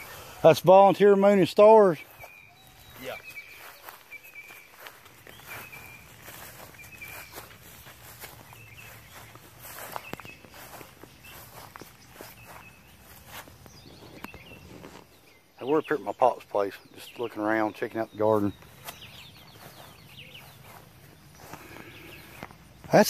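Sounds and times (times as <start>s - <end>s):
faint footsteps: 0.0s - 15.5s, 17.4s - 23.0s.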